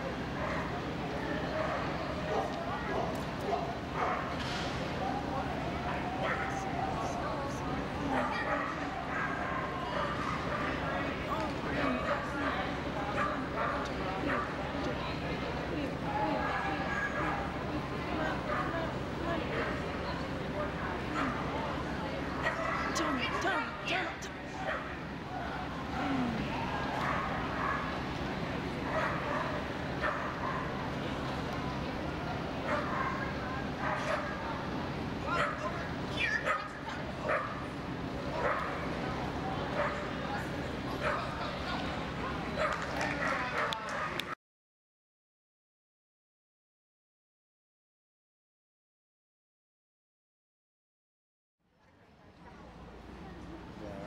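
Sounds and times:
steady hum of large hall: 0.0s - 44.4s, 51.7s - 54.0s
dog barking: 0.4s - 0.7s, 1.6s - 4.3s, 8.1s - 10.7s, 13.2s - 14.5s, 27.0s - 27.9s, 28.9s - 30.7s, 32.7s - 34.4s, 35.4s - 35.7s, 36.4s - 37.6s, 38.4s - 38.8s, 42.6s - 44.3s
dog barking in high yips: 35.4s - 35.6s, 36.3s - 37.5s.

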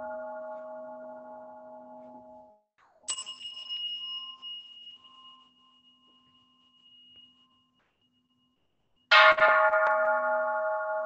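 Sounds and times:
small bell ringing: 3.1s - 9.4s.

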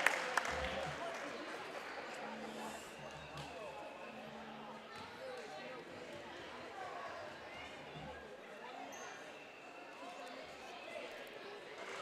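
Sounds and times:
murmur of spectators' voices: 0.0s - 12.0s.

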